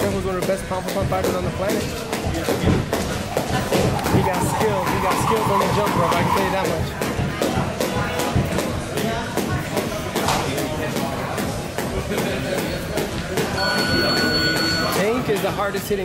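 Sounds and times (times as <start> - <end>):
jump rope slapping canvas: 0.0 - 4.2
voices: 0.3 - 16.0
high electronic beep: 13.6 - 15.2.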